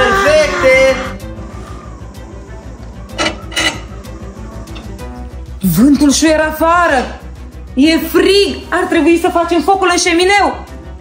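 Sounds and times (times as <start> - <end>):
background music with steady beat: 0.0 - 11.0
metal vent slider scraping: 3.2 - 4.0.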